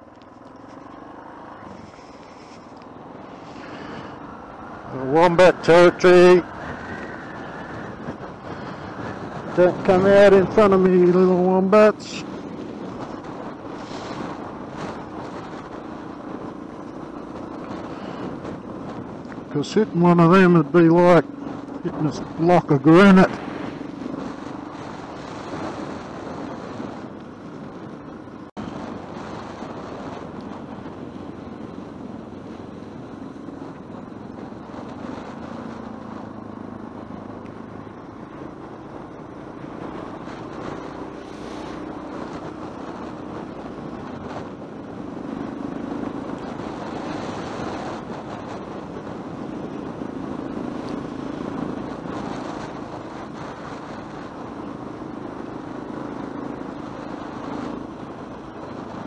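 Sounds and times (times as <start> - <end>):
motorcycle engine running: 0.0 - 59.0
wind rush: 0.0 - 59.0.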